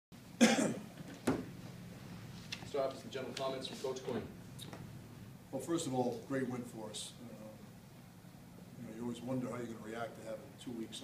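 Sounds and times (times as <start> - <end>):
person coughing: 0.4 - 0.9.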